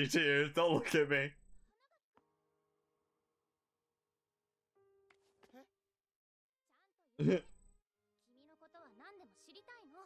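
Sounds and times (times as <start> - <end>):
man speaking: 0.0 - 1.4.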